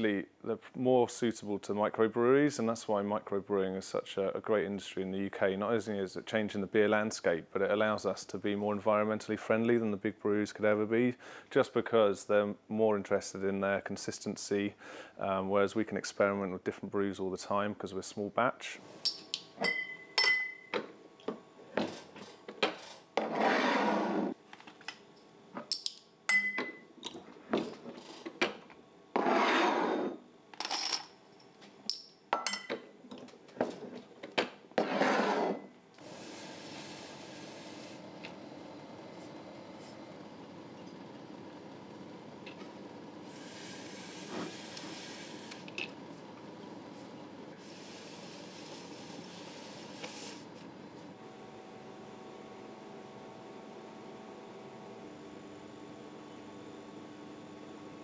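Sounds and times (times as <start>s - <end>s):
hiss: 36.0s - 38.0s, 43.3s - 45.6s.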